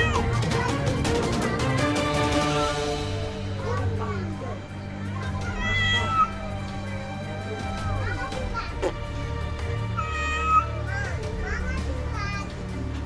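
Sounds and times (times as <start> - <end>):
background music: 0.0 - 13.0
children's voices: 0.0 - 13.0
cat meowing: 5.5 - 6.5, 10.0 - 10.7.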